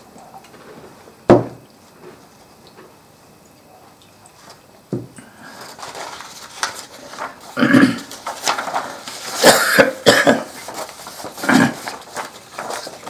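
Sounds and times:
photo prints rustling: 5.2s - 13.0s
person coughing: 7.5s - 8.1s, 9.3s - 10.6s, 11.4s - 12.0s.

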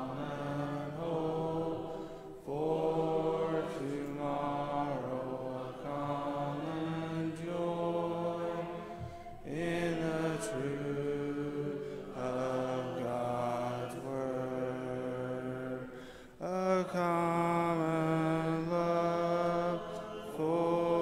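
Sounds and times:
congregation singing a hymn: 0.0s - 21.0s.

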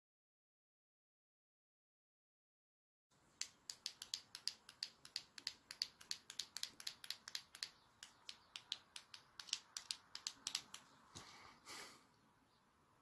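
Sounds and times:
sharp clicking taps: 3.4s - 11.3s.

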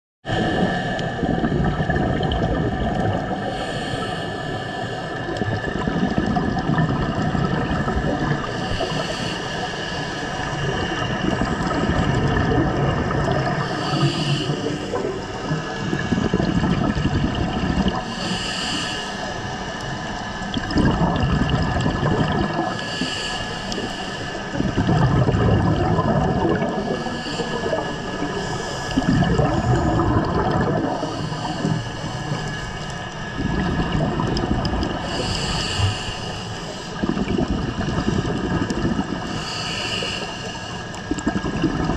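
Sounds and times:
gurgling exhaled bubbles: 0.2s - 41.9s
steady hum: 0.3s - 41.9s
regulator hissing inhale: 3.1s - 6.0s, 7.8s - 12.5s, 13.4s - 16.7s, 18.0s - 20.4s, 22.7s - 24.9s, 26.6s - 41.2s.

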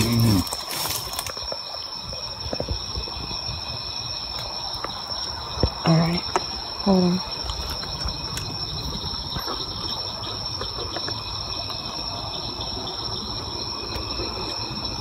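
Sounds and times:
night insects trilling: 0.0s - 15.0s.

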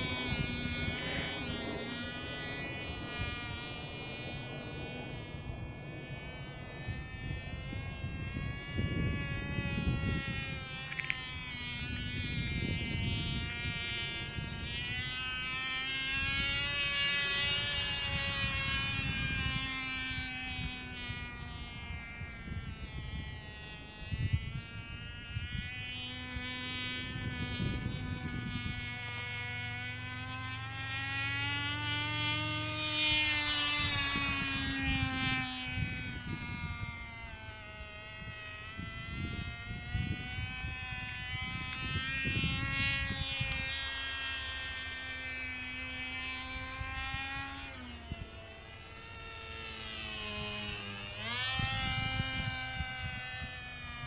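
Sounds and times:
model airplane engine whining: 0.0s - 54.0s.

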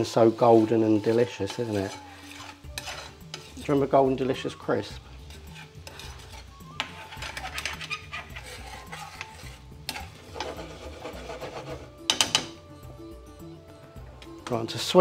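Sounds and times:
metal ladle scraping a pan: 0.0s - 12.6s.

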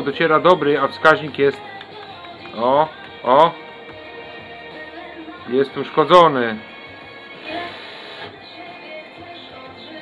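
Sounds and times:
music playing quietly through speaker: 0.0s - 10.0s.

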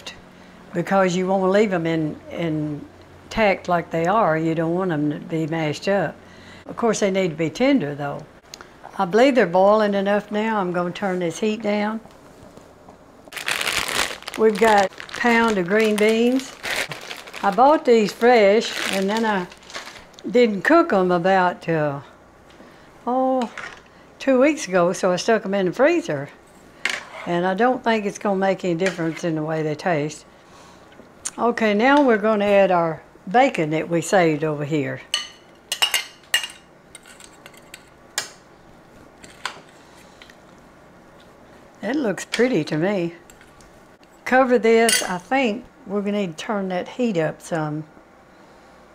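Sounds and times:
plastic bag crinkling: 13.3s - 20.3s.

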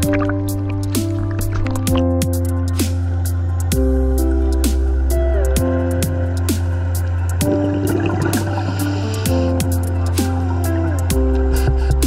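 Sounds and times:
bass line: 0.0s - 12.0s
held chords: 0.0s - 12.0s.

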